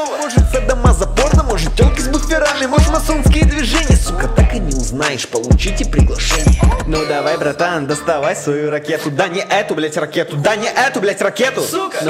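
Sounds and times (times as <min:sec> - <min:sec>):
rapping over trap beat: 0:00.0 - 0:12.0.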